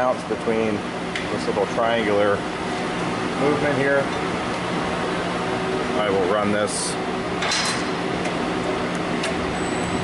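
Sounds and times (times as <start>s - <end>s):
fan hum: 0.0s - 10.0s.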